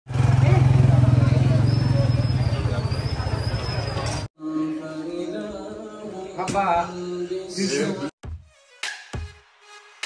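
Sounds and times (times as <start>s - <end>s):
people talking: 0.4s - 4.3s.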